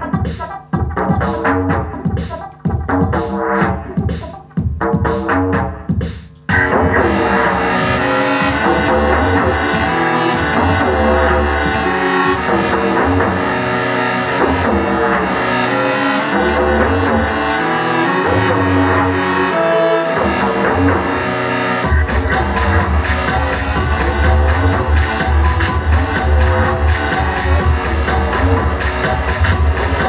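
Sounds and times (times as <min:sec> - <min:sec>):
deep bass: 0:06.5 - 0:30.0
layered synth tones: 0:06.5 - 0:30.0.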